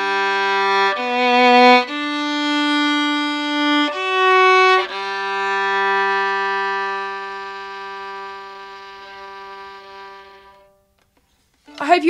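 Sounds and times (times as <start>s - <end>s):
violin holding a low note: 0.0s - 10.9s.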